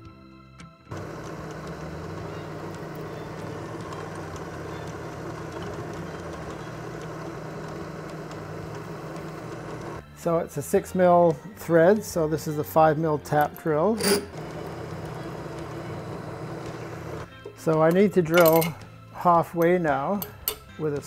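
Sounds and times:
constant motor hum: 0:00.9 - 0:10.0
milling machine drilling metal: 0:00.9 - 0:10.0, 0:14.0 - 0:17.3.

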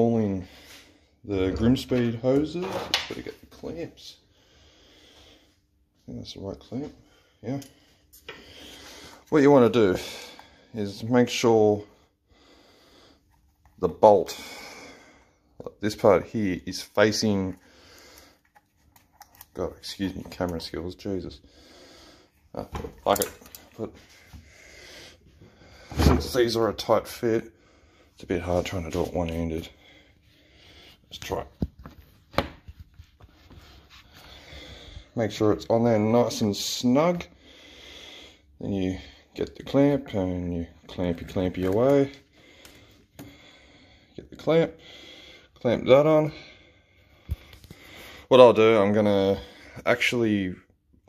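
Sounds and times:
hose rubbing and handling: 0:28.4 - 0:34.6.

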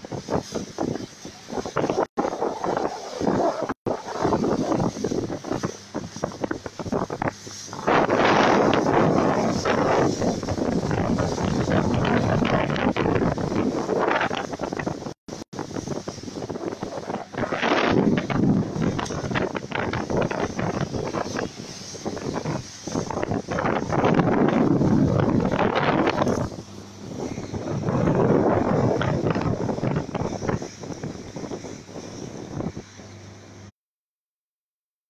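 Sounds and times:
wind buffeting microphone: 0:00.0 - 0:33.7
rushing water from boat wake: 0:00.0 - 0:33.8.

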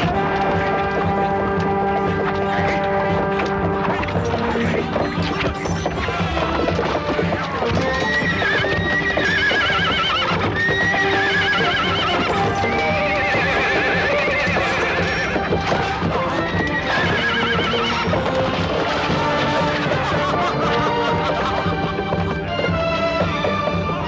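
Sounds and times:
battle music: 0:00.0 - 0:24.0
galloping hooves: 0:00.0 - 0:24.0
horses neighing: 0:00.0 - 0:24.0.

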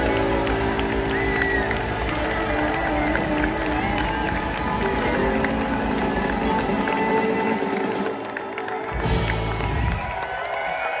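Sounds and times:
live blues band playing: 0:00.0 - 0:10.0
crowd cheering and clapping: 0:00.0 - 0:11.0.

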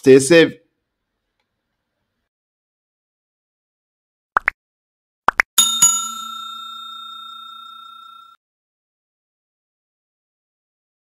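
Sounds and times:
bright bell ding: 0:05.6 - 0:08.4.

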